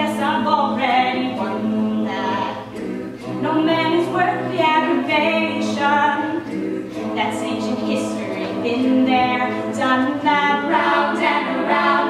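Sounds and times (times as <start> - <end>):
a cappella group singing in harmony: 0.0 - 12.0.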